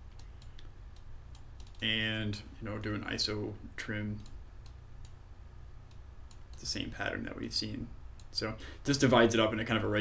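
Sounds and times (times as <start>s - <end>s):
low steady hum: 0.0s - 10.0s
computer keyboard typing: 1.4s - 1.8s.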